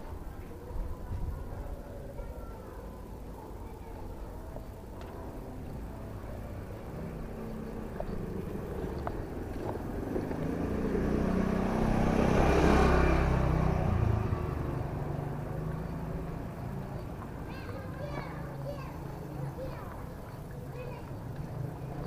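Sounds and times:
motor scooter passing by: 0:06.2 - 0:22.0.

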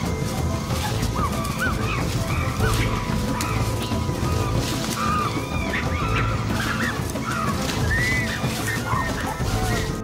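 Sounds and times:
animal yelping calls: 0:00.0 - 0:10.0
dense noisy background: 0:00.0 - 0:10.0
music: 0:00.0 - 0:10.0.

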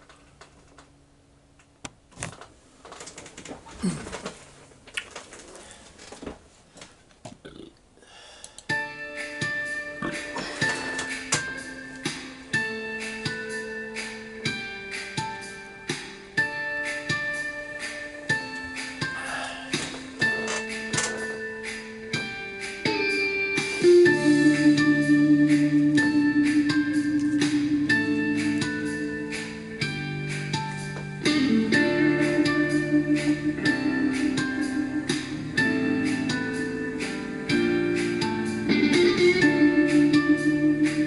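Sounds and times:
plucked guitar music: 0:19.8 - 0:41.0.

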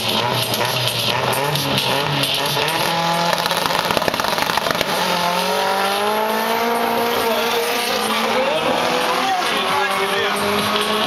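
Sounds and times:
cars launching at full throttle: 0:00.0 - 0:11.0.

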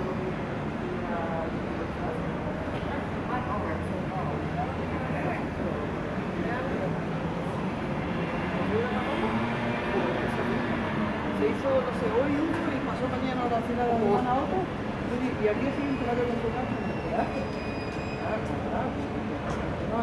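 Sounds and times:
low rumble of traffic: 0:00.0 - 0:20.0.

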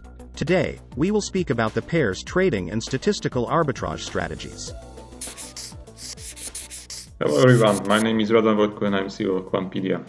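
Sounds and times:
paint brush scrubbing strokes: 0:05.2 - 0:08.0.

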